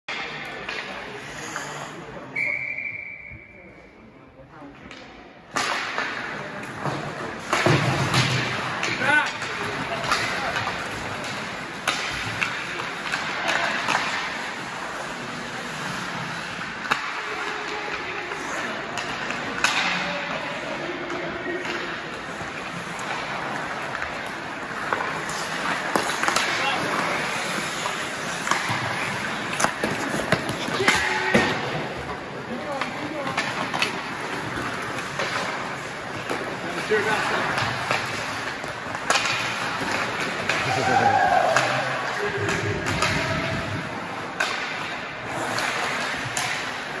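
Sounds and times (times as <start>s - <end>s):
sticks and puck clacking: 0.1s - 2.5s, 4.6s - 47.0s
referee's whistle: 2.3s - 3.6s
spectators' voices and shouts: 25.2s - 44.6s.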